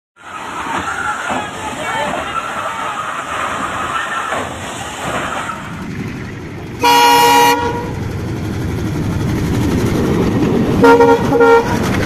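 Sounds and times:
train rumbling past: 0.2s - 12.0s
train horn blast: 6.8s - 8.0s, 10.8s - 11.8s.

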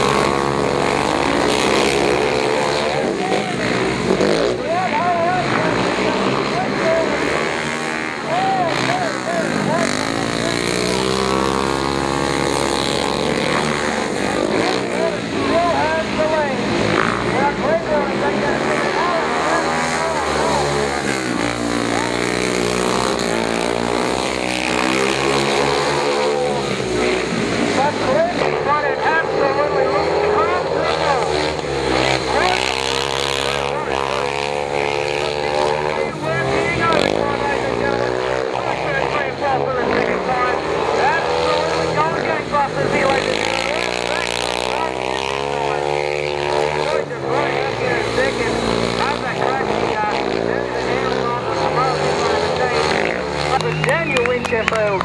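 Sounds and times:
motorcycle engines racing: 0.0s - 55.0s.

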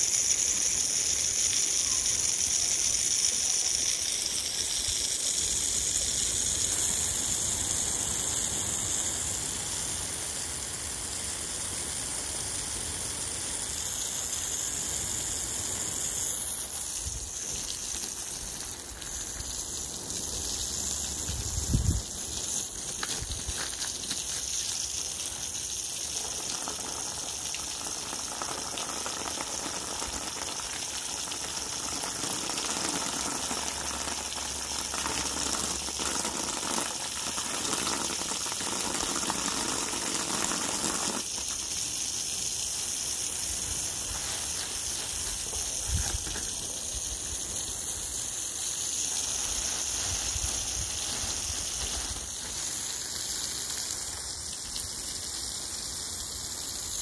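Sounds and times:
hose water splashing on soil: 0.0s - 57.0s.

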